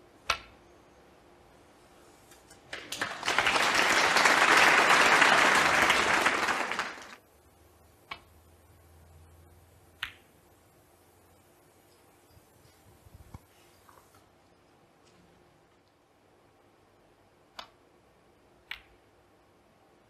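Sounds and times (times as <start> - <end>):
audience applauding: 2.7 - 7.2.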